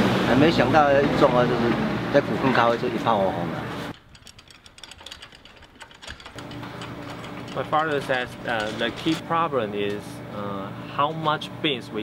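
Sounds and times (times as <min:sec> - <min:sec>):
metal trolley rattling on road: 0:03.9 - 0:09.2.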